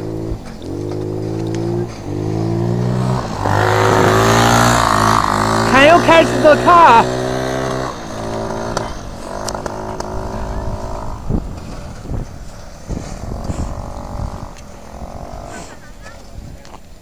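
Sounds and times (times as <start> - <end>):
small engine running: 0.0 - 16.3.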